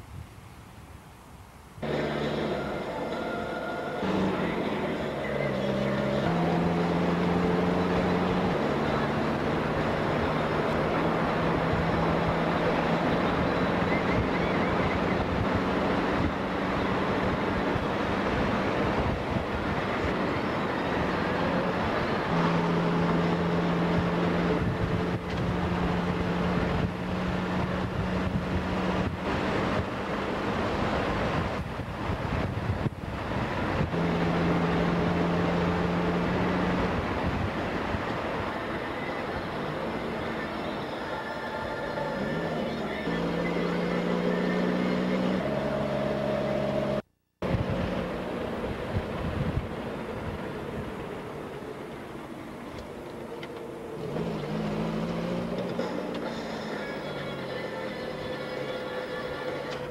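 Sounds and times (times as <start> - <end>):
road noise inside moving vehicle: 0.0 - 59.9.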